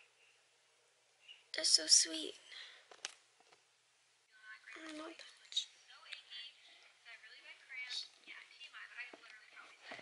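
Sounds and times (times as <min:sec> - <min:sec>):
soft whispering: 0:04.3 - 0:10.0.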